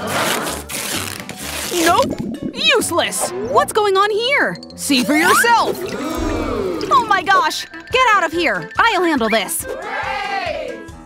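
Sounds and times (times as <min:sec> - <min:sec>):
duct tape ripping off roll: 0:00.0 - 0:02.0.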